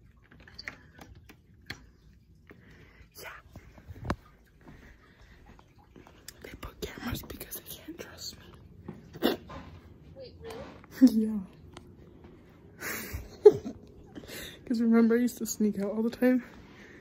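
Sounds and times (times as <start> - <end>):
person whispering: 3.1 - 4.0, 6.3 - 8.6.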